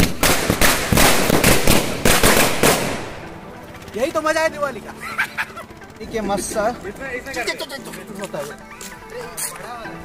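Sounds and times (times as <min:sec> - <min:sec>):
firecracker crackling bangs: 0:00.0 - 0:03.3.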